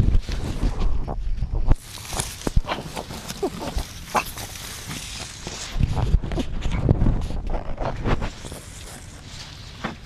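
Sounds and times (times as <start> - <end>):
rustle of leaves: 1.8 - 6.2, 8.2 - 10.0.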